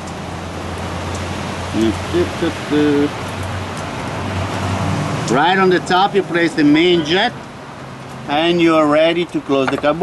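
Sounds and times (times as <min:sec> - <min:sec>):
steady rain: 0:00.0 - 0:10.0.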